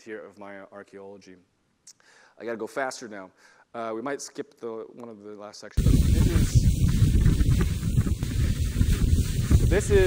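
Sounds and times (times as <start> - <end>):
wind buffeting microphone: 5.8 - 10.0.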